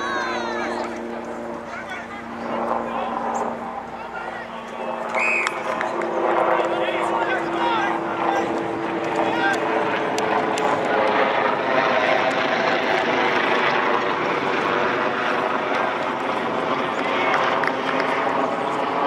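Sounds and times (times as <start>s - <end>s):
propeller aircraft engine drone: 0.0s - 19.0s.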